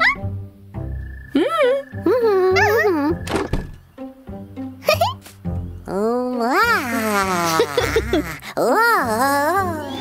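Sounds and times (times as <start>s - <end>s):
door shutting with a thud: 3.2s - 3.8s
cartoon character wordless vocal: 5.9s - 10.0s.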